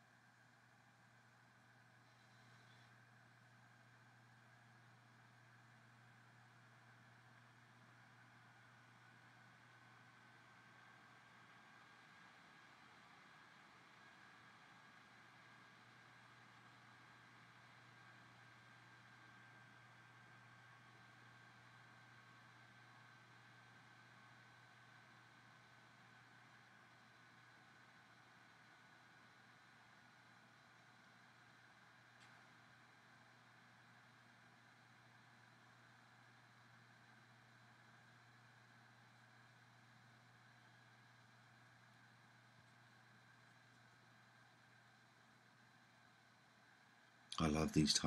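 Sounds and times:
faint high whine: 0.0s - 48.0s.

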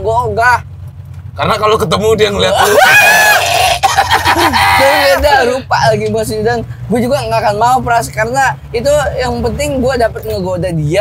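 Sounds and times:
men laughing loudly: 2.5s - 5.6s.

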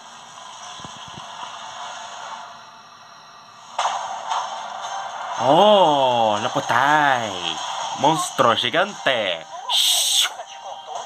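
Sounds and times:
film trailer soundtrack: 1.4s - 11.0s.

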